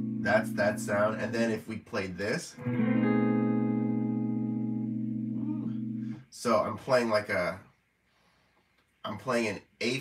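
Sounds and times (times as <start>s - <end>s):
electric guitar chord ringing: 0.0s - 1.5s, 2.6s - 6.2s.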